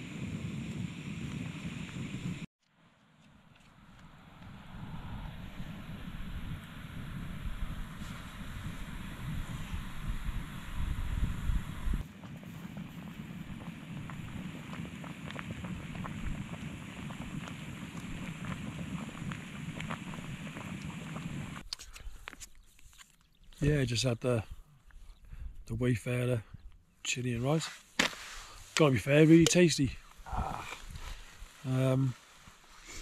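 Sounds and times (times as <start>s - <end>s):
wind on microphone: 0.0s - 2.5s, 3.8s - 22.2s, 29.4s - 31.6s
gas stove hissing: 6.3s - 21.6s.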